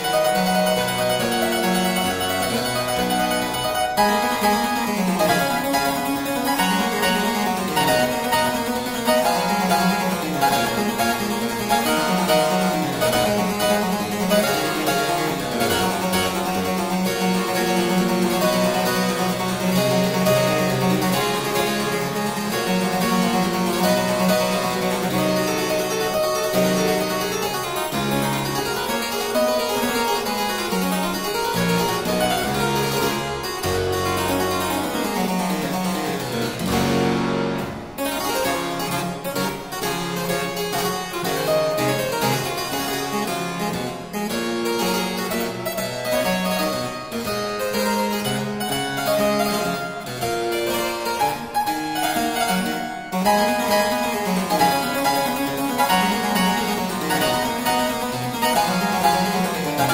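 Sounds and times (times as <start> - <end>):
solo harpsichord baroque piece: 0.0 - 59.9.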